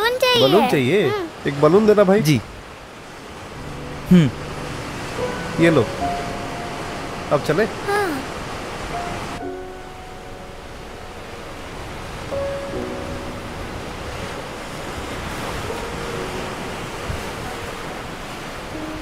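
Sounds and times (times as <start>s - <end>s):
ocean surf washing onto beach: 0.0s - 19.0s
soft held notes of background music: 3.5s - 19.0s.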